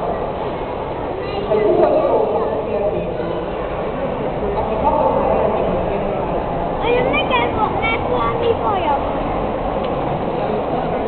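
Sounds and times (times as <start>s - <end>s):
indoor hall hubbub: 0.0s - 11.0s.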